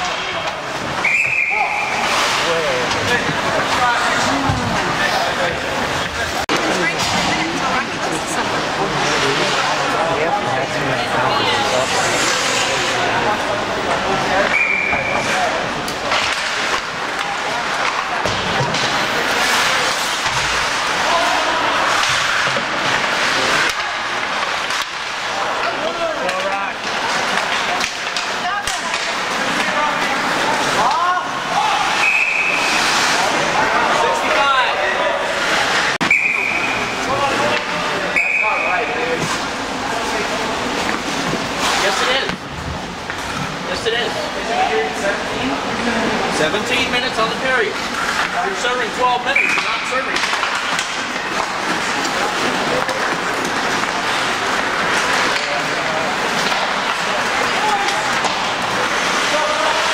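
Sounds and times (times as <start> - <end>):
sticks and puck clacking: 0.0 - 10.1, 11.4 - 44.0, 46.5 - 59.9
skates scraping ice: 0.0 - 59.9
referee whistle blasts: 1.0 - 2.0, 32.0 - 32.7, 36.0 - 36.8, 38.2 - 38.8
people shouting: 21.0 - 22.1, 30.8 - 35.3.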